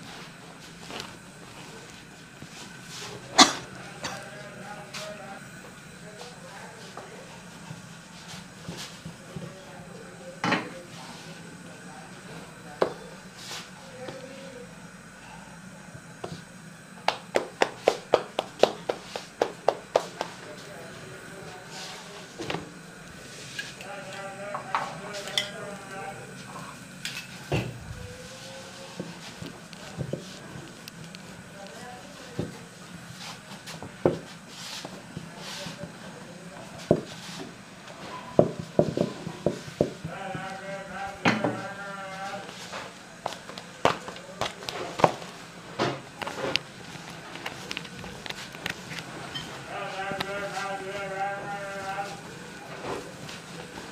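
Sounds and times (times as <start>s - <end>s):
low steady hum: 0.0s - 36.8s
rolling pin tapping on board: 17.1s - 20.3s.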